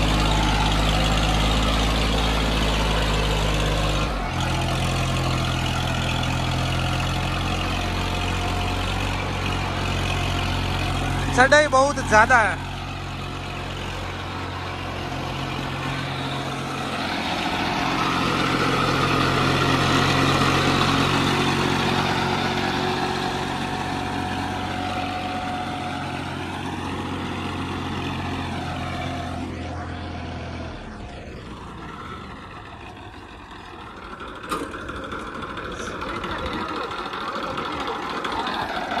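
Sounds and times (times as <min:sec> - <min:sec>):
tractor diesel engine under load: 0:00.0 - 0:39.0.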